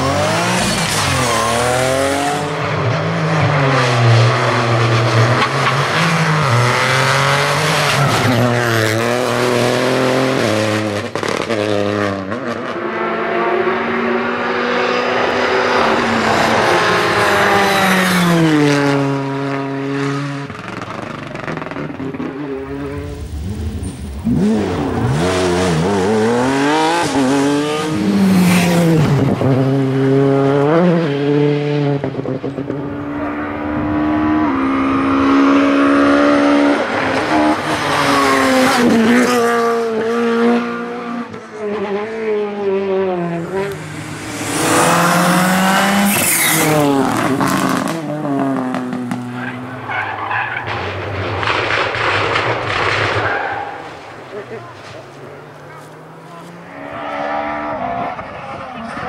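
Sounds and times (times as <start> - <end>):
cars passing: 0.0 - 59.0
rally car engines revving: 0.0 - 59.0.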